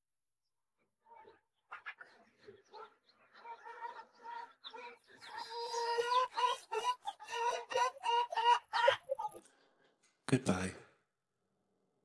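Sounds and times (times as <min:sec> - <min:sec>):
chicken clucking: 0:01.2 - 0:09.5.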